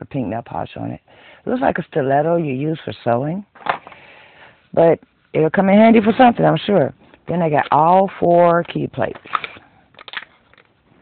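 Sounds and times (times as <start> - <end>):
plastic plates clicking and crackling: 8.6 - 10.8.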